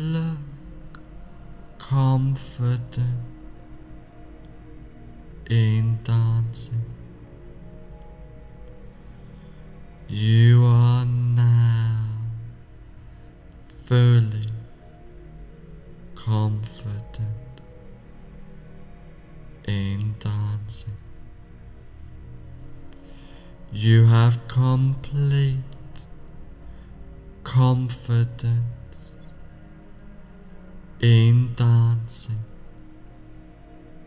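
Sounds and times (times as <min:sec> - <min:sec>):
man speaking slowly: 0:00.0 - 0:00.7, 0:01.8 - 0:03.4, 0:05.4 - 0:07.0, 0:10.0 - 0:12.5, 0:13.7 - 0:14.7, 0:16.1 - 0:17.7, 0:19.6 - 0:21.0, 0:23.7 - 0:26.1, 0:27.4 - 0:29.3, 0:31.0 - 0:32.6
man chanting a long note: 0:00.0 - 0:07.8, 0:09.9 - 0:12.7, 0:13.6 - 0:21.6, 0:23.6 - 0:26.2, 0:27.0 - 0:33.8
soft meditation music: 0:00.0 - 0:34.0.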